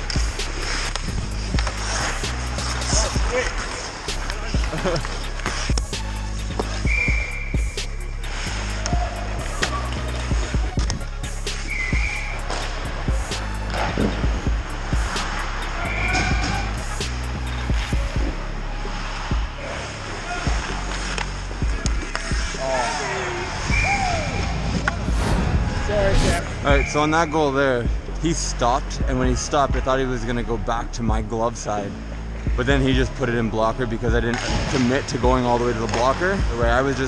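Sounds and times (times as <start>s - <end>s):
hockey sticks and puck clacking: 0.0s - 14.4s, 15.0s - 18.0s, 18.9s - 25.0s, 34.3s - 37.0s
skate blades scraping ice: 0.0s - 26.3s
background music: 0.0s - 37.0s
players shouting: 8.6s - 10.6s, 15.6s - 16.8s, 21.9s - 26.8s.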